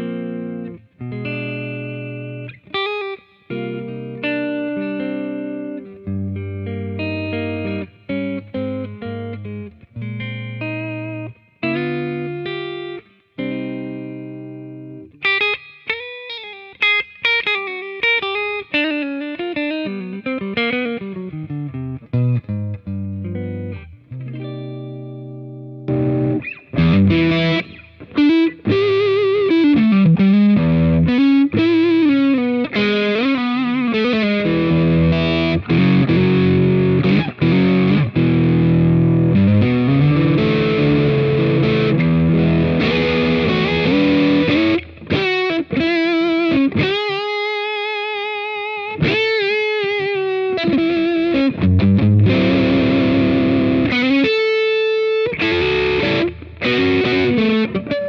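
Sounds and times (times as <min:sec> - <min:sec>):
electric guitar through amp: 0:00.0 - 0:58.0.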